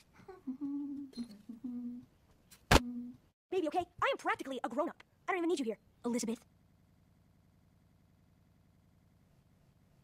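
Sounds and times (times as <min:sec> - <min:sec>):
person humming: 0:00.2 - 0:02.1, 0:02.7 - 0:03.3.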